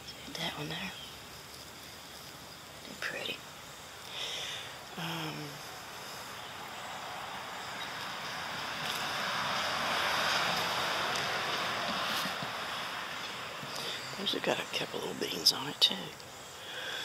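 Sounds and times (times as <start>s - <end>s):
road traffic rushing by: 4.2s - 15.6s.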